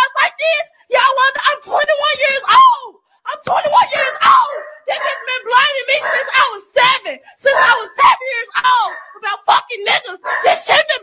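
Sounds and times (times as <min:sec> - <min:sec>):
woman shouting: 0:00.0 - 0:11.0.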